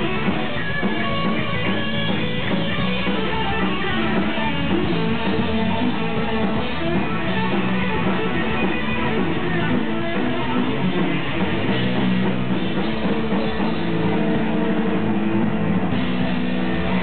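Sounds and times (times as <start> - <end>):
punk rock band playing live: 0.0 - 17.0
strummed electric guitar: 0.0 - 17.0.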